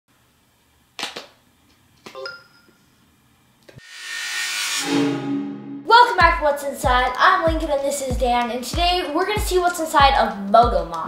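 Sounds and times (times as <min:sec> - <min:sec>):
rising rush of sound: 0:03.8 - 0:05.9.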